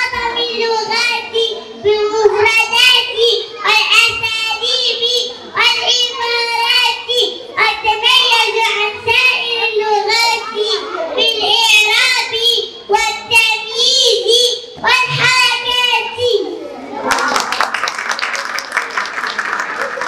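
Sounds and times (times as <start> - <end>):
girl speaking over loudspeakers: 0.0 - 17.1
audience clapping: 17.0 - 20.0.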